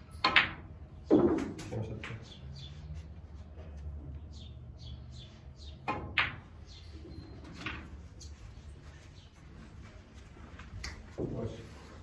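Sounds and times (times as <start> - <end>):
snooker balls clicking: 0.2 - 2.3.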